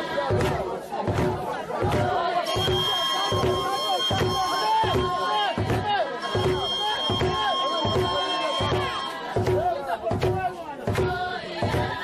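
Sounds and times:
crowd chanting: 0.0 - 12.0
low thuds keeping a beat: 0.0 - 12.0.

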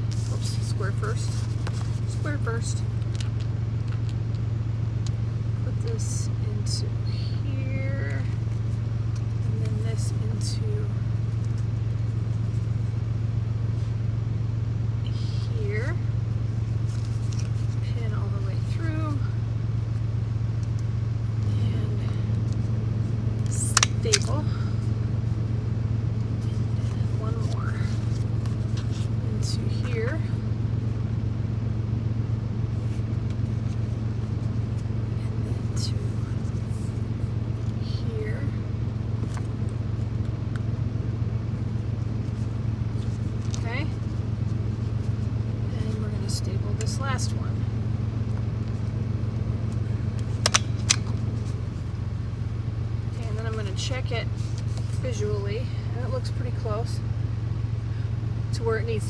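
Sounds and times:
paper and fabric rustling: 0.0 - 4.1, 16.4 - 19.2, 26.3 - 30.9, 41.4 - 47.0
low hum: 0.0 - 59.0.

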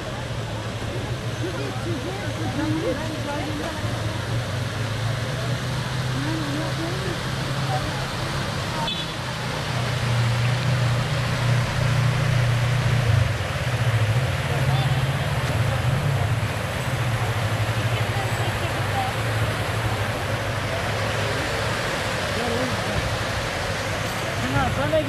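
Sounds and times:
crowd chatter: 0.0 - 12.0, 14.2 - 25.0
fountain water splashing: 0.0 - 25.0.

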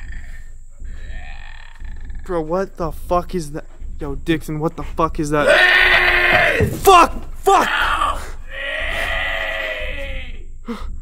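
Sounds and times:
high-pitched scream-like cry: 5.4 - 6.6, 7.5 - 10.4.

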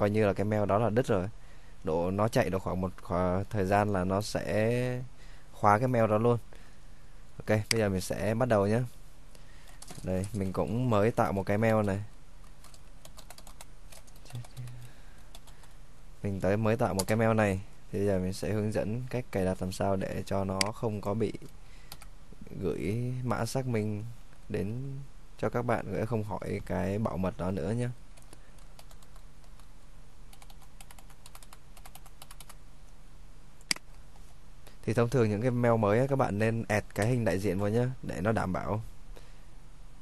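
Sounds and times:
steady low hum: 0.0 - 40.0
computer keyboard typing: 11.8 - 15.7, 28.2 - 29.7, 30.3 - 32.6.

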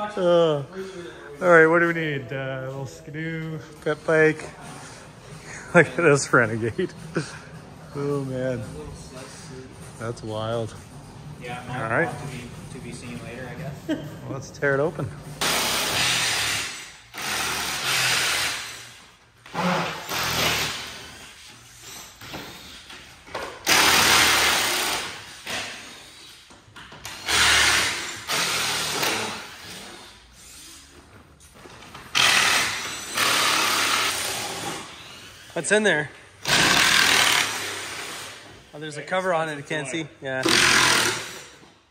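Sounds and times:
cordless drill bursts: 15.4 - 19.0, 19.6 - 21.0, 23.6 - 25.6, 27.1 - 29.8, 32.1 - 35.5, 36.4 - 38.4, 40.4 - 41.6.

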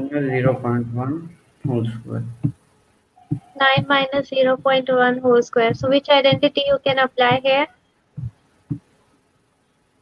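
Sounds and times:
soft low thumps: 0.0 - 2.6, 3.2 - 9.0.

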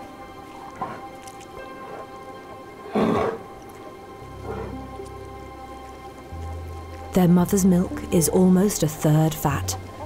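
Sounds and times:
background music with held notes: 0.0 - 10.0
polar bear call: 2.8 - 3.6.

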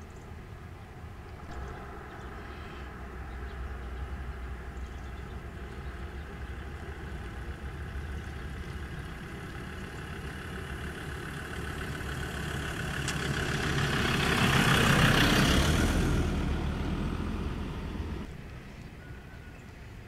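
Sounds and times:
road traffic rumble: 0.0 - 20.0
vehicle passing close by: 1.3 - 18.5.

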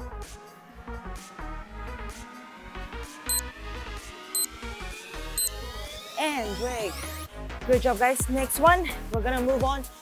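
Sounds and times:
electronic music with steady beat: 1.6 - 6.2.

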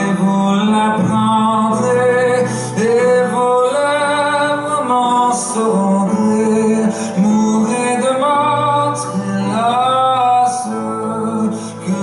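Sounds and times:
man singing slow song: 0.0 - 12.0
soft instrumental accompaniment: 0.0 - 12.0.

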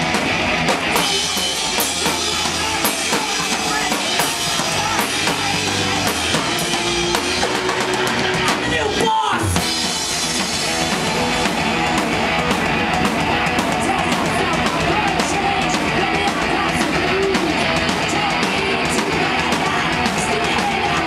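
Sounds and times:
drum kit: 0.0 - 21.0
electric guitar: 0.0 - 21.0.

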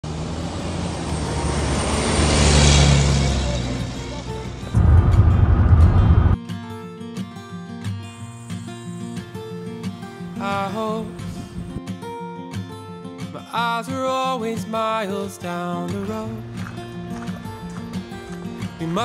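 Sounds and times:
large truck passing: 0.0 - 6.4
road noise rumble inside van: 0.0 - 6.4.

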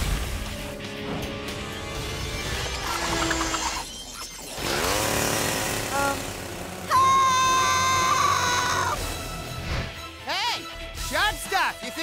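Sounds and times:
music: 0.0 - 4.6, 6.2 - 12.0.

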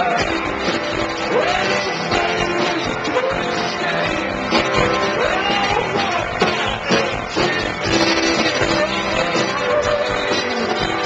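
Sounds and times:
drums: 0.0 - 11.0
electric guitar: 0.0 - 11.0
person singing: 0.0 - 11.0.

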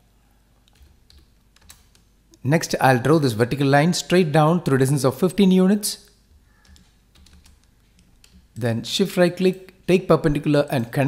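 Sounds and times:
faint computer keystrokes: 0.6 - 2.1, 6.3 - 8.6.

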